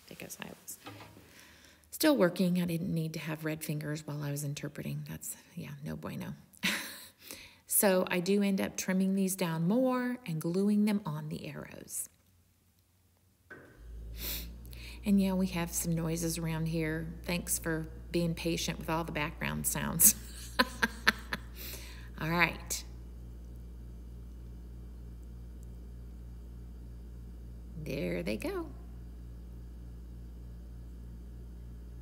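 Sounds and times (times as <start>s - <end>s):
steady low hum: 13.4s - 32.0s.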